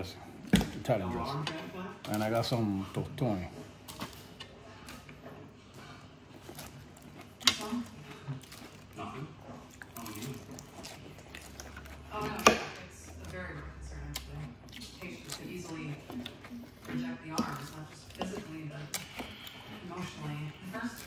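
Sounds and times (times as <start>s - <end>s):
moist chewing: 2.0s - 21.0s.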